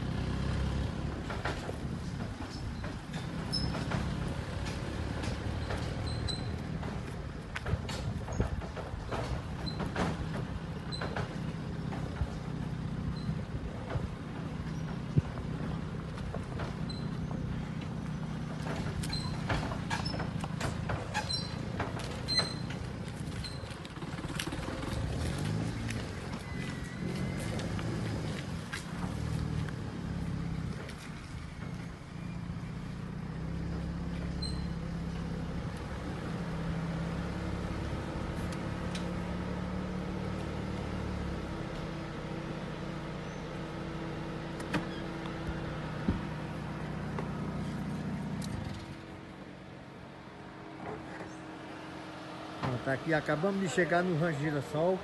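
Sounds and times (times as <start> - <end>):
car engine running at low speed: 0.0 - 55.0.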